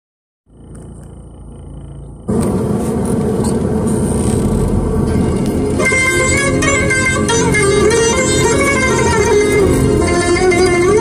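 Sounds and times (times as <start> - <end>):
car rumble on dirt road: 0.5 - 11.0
loud noisy sound: 1.4 - 11.0
plucked-string music: 4.4 - 11.0.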